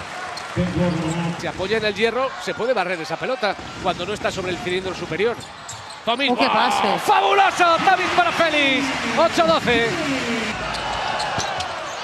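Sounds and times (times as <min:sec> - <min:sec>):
crowd hubbub: 0:05.4 - 0:12.0.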